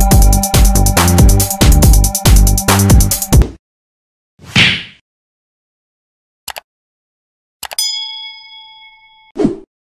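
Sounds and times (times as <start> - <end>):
notification bell ding: 7.7 - 9.4.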